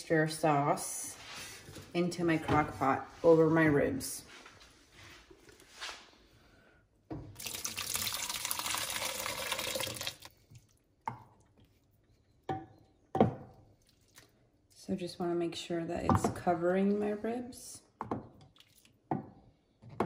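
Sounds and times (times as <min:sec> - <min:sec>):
sauce pouring and splashing: 0:07.3 - 0:11.9, 0:13.7 - 0:14.5, 0:18.4 - 0:19.1.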